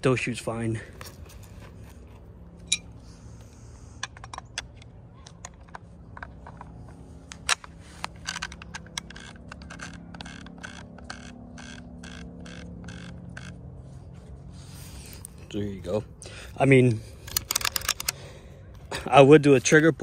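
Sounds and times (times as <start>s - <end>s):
sharp metal clicks of rifle: 4.0s - 13.6s, 17.2s - 18.2s.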